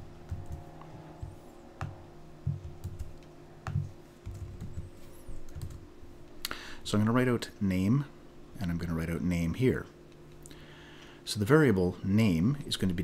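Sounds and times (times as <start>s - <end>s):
computer keyboard typing: 0.2s - 0.7s, 2.5s - 4.9s, 5.5s - 5.8s.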